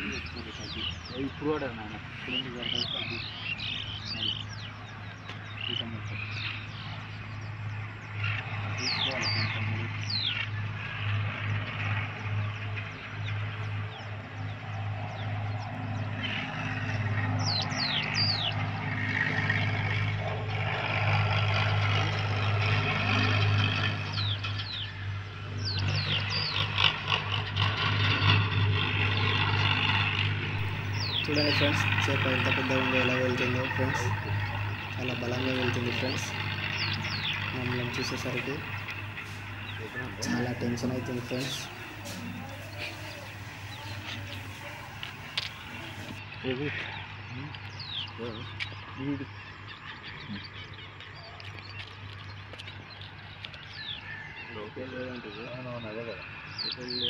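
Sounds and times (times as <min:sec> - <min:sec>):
steady low hum: 0:00.0 - 0:48.3
birds calling: 0:00.0 - 0:57.0.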